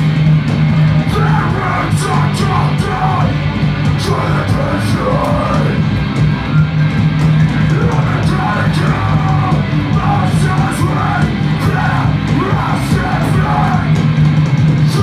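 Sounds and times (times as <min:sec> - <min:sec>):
distorted electric guitars: 0:00.0 - 0:15.0.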